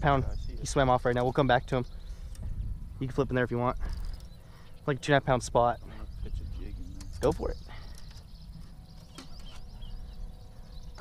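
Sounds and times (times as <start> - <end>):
faint bird chirps: 0.0 - 11.0
low outdoor rumble: 0.0 - 11.0.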